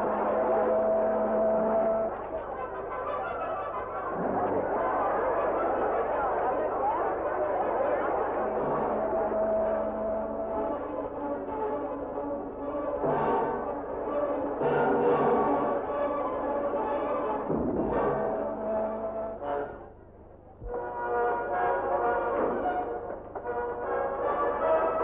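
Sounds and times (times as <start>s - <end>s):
orchestral music led by brass: 0.0s - 20.0s, 20.6s - 25.0s.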